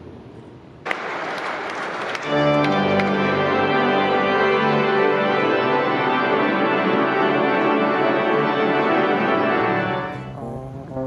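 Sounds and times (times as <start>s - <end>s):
applause: 0.8s - 5.6s
pipe organ chords: 0.9s - 11.0s.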